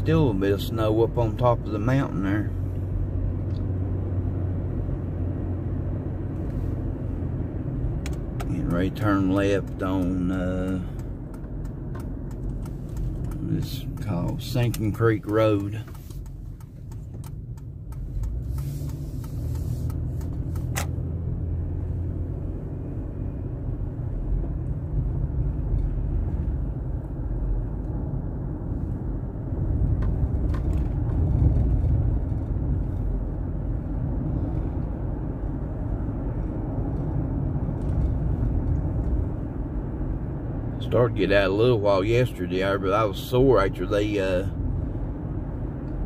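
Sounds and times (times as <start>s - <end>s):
car cabin road noise: 0.0s - 46.0s.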